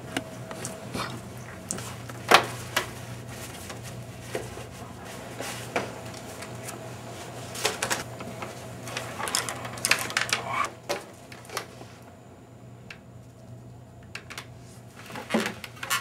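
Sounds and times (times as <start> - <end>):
steady low hum: 0.0 - 16.0
papers rustling: 1.5 - 11.7.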